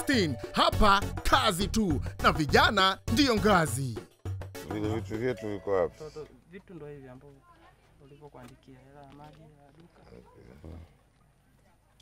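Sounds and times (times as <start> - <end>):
faint voices: 7.4 - 12.0.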